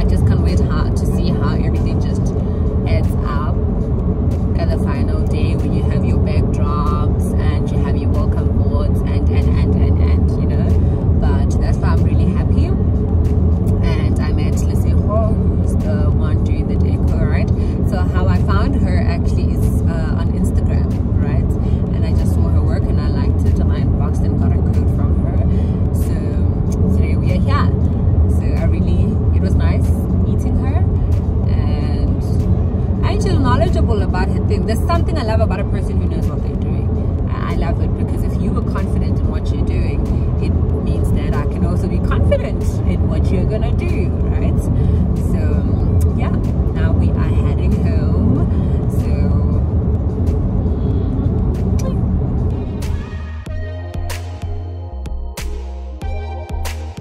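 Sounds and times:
woman talking: 0:00.0 - 0:03.6, 0:04.6 - 0:12.8, 0:13.8 - 0:49.7, 0:51.8 - 0:52.1
car interior rumble: 0:00.0 - 0:57.0.

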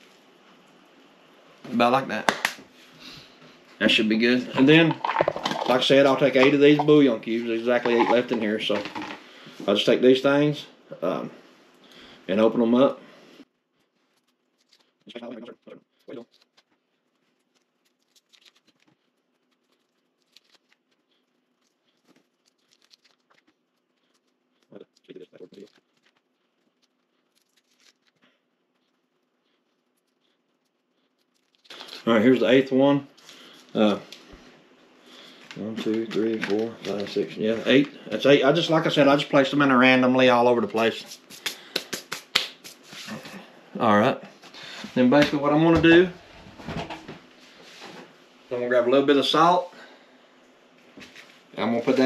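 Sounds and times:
faint low hum: 0:00.0 - 0:52.0
foil crinkling: 0:13.8 - 0:34.0, 0:35.1 - 0:39.2.

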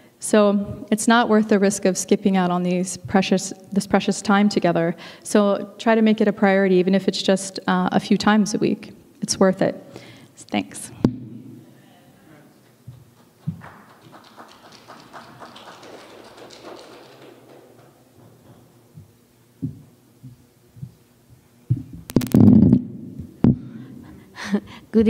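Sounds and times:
faint room noise: 0:00.0 - 0:25.0
woman speaking: 0:10.4 - 0:11.0
microphone handling thumps: 0:21.7 - 0:23.6.

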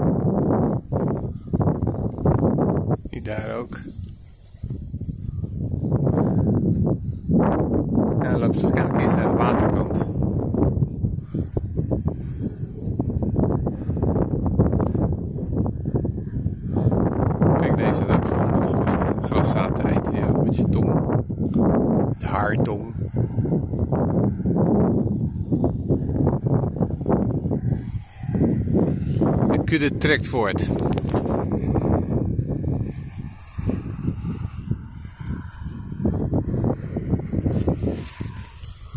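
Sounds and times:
rustles in dry grass: 0:00.0 - 0:08.2, 0:23.0 - 0:38.9
wind rumbling on microphone: 0:00.0 - 0:38.9.

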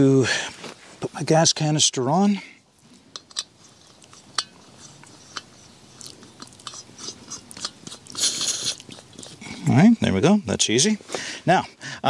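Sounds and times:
metal threads clicking and scraping: 0:02.8 - 0:09.7.

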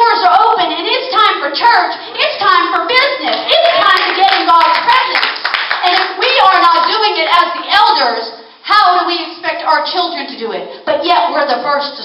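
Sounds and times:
crowd clapping: 0:03.2 - 0:06.9.

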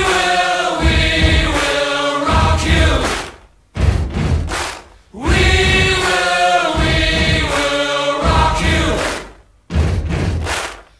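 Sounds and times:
voices singing in chorus: 0:00.0 - 0:03.4, 0:05.1 - 0:09.4.

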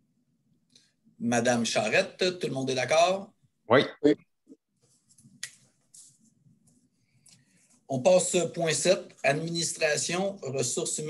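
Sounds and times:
faint low background noise: 0:00.0 - 0:11.0
person speaking over videoconference: 0:01.2 - 0:04.3, 0:07.9 - 0:11.0.

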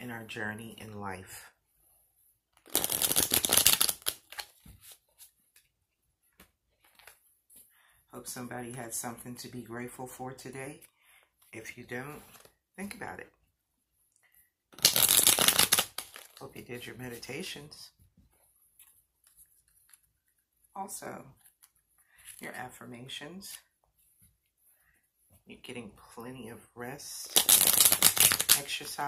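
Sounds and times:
cards being shuffled: 0:02.5 - 0:05.7, 0:06.4 - 0:07.3, 0:14.7 - 0:17.2, 0:27.2 - 0:29.0.

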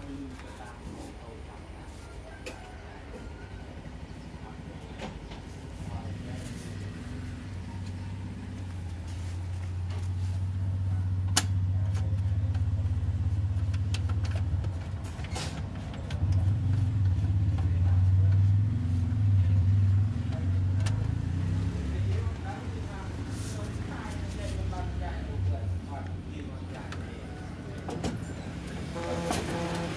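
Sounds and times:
printing machine humming: 0:28.4 - 0:29.9.

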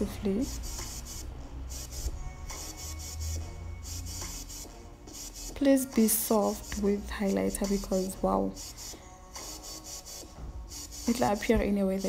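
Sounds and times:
faint music: 0:00.0 - 0:12.0
makeup brush brushing skin: 0:04.2 - 0:12.0.

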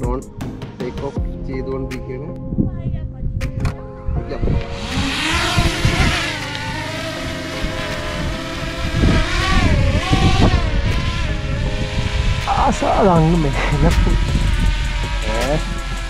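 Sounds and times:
drone motors whining: 0:04.6 - 0:16.0.

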